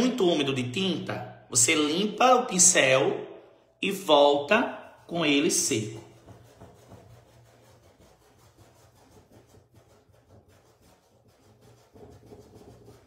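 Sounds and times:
paintbrush rubbing on fabric: 0:04.4 - 0:13.0.

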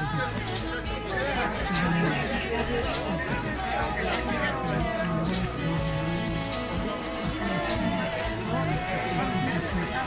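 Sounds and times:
background music: 0:00.0 - 0:10.0
indistinct chatter: 0:00.0 - 0:10.0.

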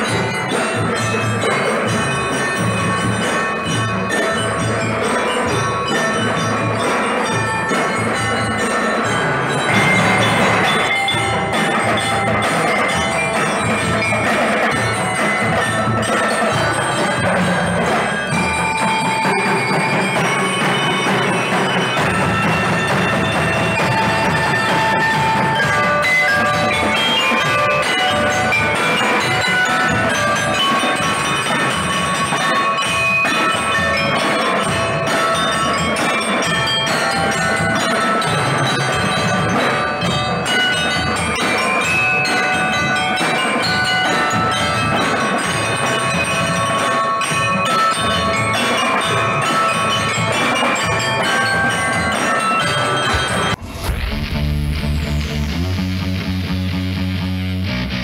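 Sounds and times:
mallet keyboards playing melody: 0:00.0 - 0:53.6
snare drums: 0:00.0 - 0:55.8
multi-tenor drums: 0:00.0 - 0:58.0
bass drums: 0:53.1 - 0:58.0.

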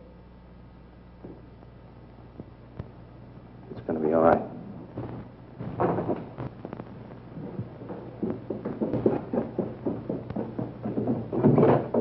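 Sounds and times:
film soundtrack hiss: 0:00.0 - 0:12.0
footsteps on wooden stairs: 0:07.4 - 0:12.0.

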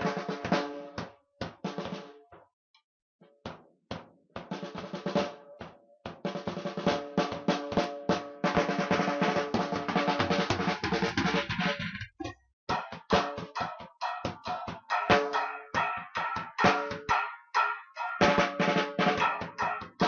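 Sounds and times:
drum kit playing: 0:00.0 - 0:02.2, 0:04.4 - 0:20.0.

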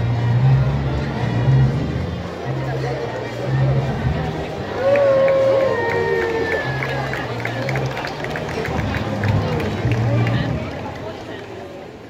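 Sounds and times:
soundtrack music with low bass: 0:00.0 - 0:10.9
crowd voices: 0:00.0 - 0:12.0.

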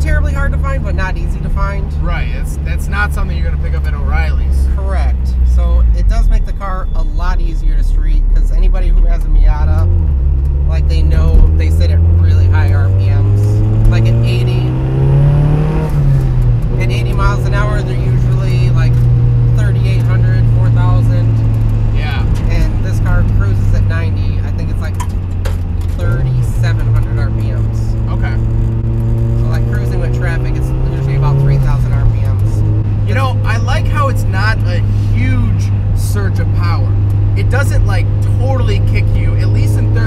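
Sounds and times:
car engine heard from cabin: 0:00.0 - 0:40.0.

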